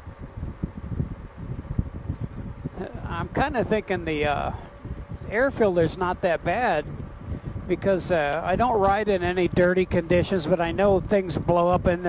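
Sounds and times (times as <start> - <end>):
road noise: 0.0 - 10.7
wind buffeting microphone: 0.0 - 12.0.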